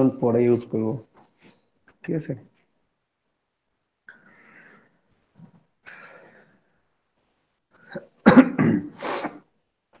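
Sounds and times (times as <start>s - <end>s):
person coughing: 7.9s - 9.5s.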